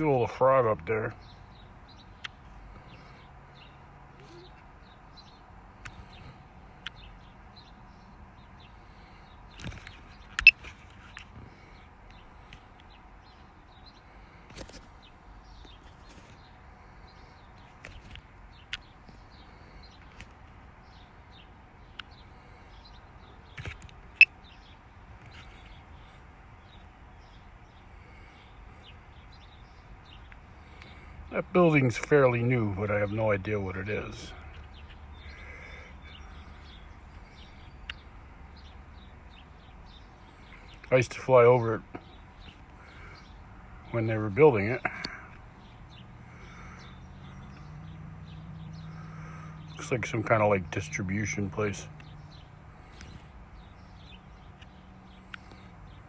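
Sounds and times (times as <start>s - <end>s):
bird chirps: 0.0s - 56.0s.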